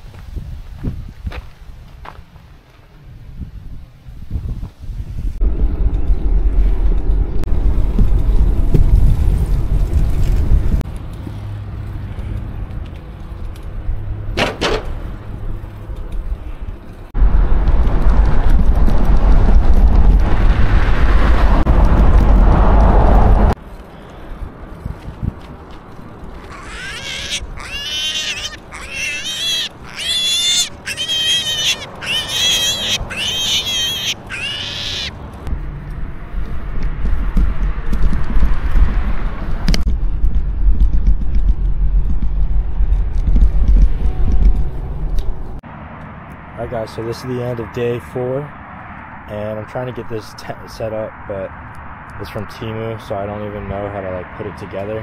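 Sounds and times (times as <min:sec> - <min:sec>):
wind buffeting microphone: 0:00.0 - 0:01.9, 0:03.1 - 0:10.9, 0:16.3 - 0:23.6, 0:35.5 - 0:45.5
high piercing animal calls: 0:26.4 - 0:35.1.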